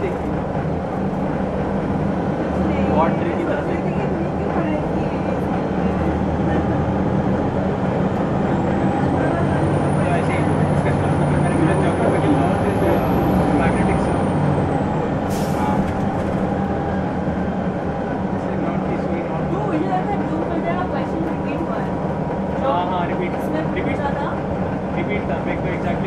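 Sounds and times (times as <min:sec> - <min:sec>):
bus diesel engine running: 0:00.0 - 0:26.0.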